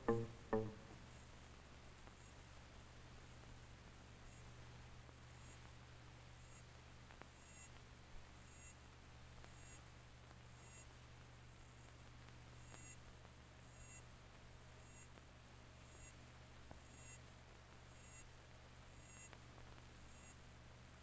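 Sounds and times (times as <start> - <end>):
faint low hum and hiss: 0.0 - 21.0.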